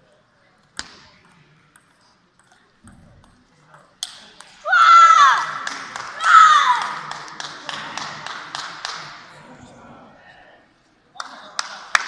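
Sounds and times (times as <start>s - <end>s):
high-pitched shouts: 4.6s - 5.6s, 6.2s - 6.9s
sharp claps: 5.4s - 9.1s, 11.2s - 12.0s.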